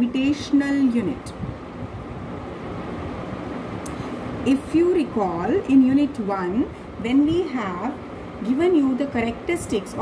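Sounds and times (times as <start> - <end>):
room noise hum and hiss: 0.0 - 10.0.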